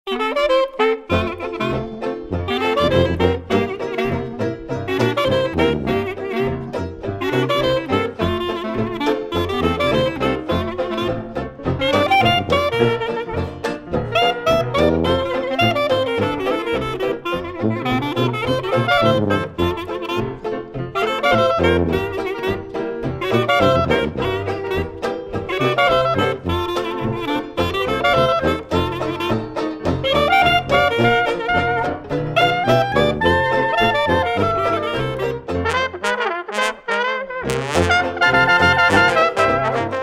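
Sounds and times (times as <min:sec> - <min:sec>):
jazz band playing: 0:00.1 - 0:40.0.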